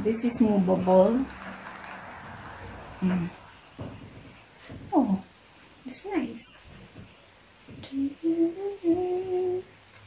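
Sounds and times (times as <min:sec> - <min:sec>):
woman humming: 0:07.8 - 0:09.7.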